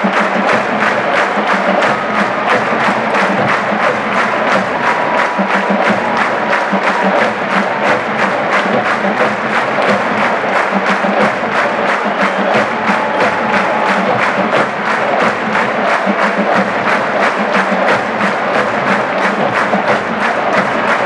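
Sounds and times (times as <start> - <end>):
marching drumline cadence: 0.0 - 21.0.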